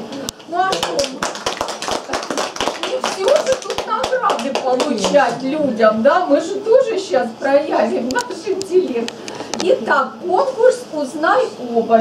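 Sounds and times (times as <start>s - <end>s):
group applauding: 0.5s - 5.4s.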